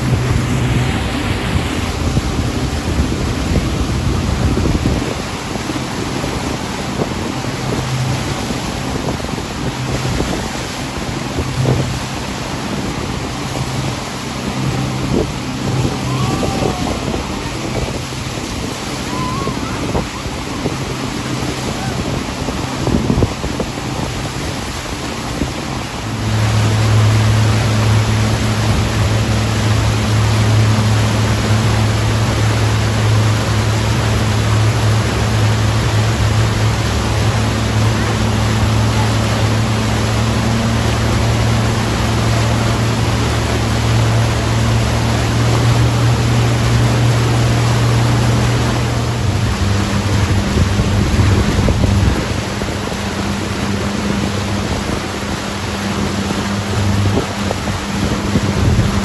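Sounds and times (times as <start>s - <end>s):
churning wake water: 0.0s - 59.0s
motorboat engine droning: 0.0s - 59.0s.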